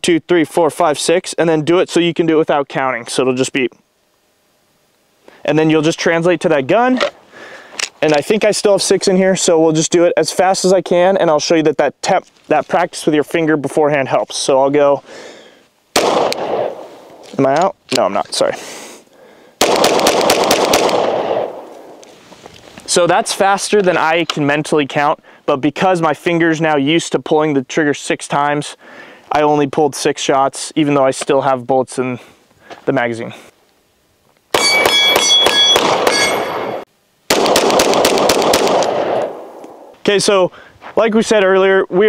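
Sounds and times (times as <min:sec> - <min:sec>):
rapid pistol shots: 0:15.9 - 0:16.9, 0:19.6 - 0:22.0, 0:34.5 - 0:39.8
metallic ringing: 0:34.6 - 0:36.8.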